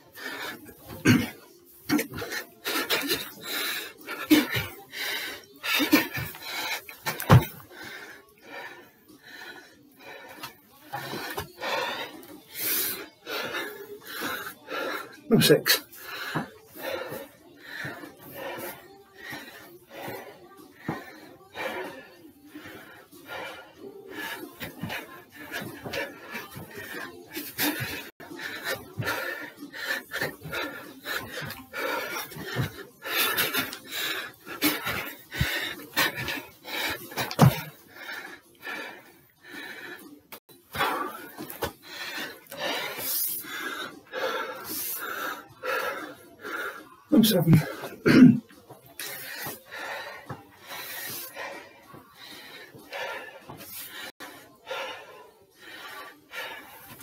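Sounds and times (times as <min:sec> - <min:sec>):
man panting hard: 0:00.0 - 0:57.0.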